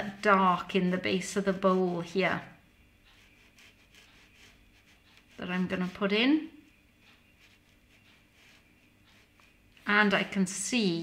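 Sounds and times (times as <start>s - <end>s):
paintbrush dabbing on paper: 0.0s - 11.0s.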